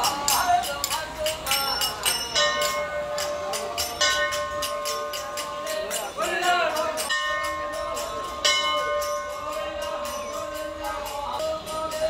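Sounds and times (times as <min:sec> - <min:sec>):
brass bell ringing: 0:00.0 - 0:12.0.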